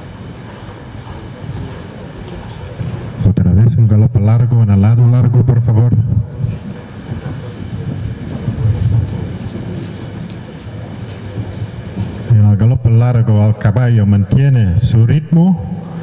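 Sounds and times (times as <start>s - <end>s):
steady rushing background noise: 0.0s - 16.0s
man's voice: 3.3s - 6.2s, 12.3s - 15.8s.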